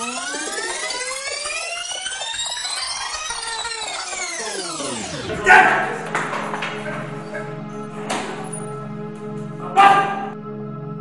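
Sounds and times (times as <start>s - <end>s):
siren-like tone winding up: 0.0s - 6.2s.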